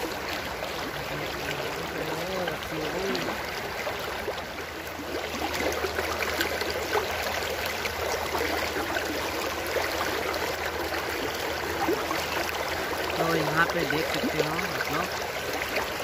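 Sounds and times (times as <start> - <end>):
river water rushing over rocks: 0.0 - 16.0.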